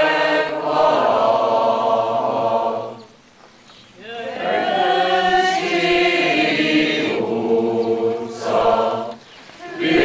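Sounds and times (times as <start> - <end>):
mixed choir singing unaccompanied: 0.0 - 3.2, 4.0 - 10.0.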